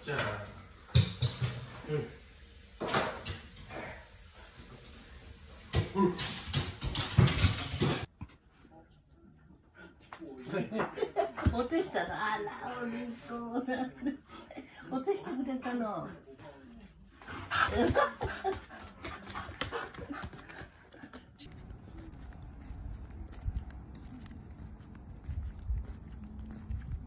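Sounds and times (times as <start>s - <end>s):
dog panting: 17.1s - 27.0s
paws scuffing and tapping on mat: 17.2s - 27.0s.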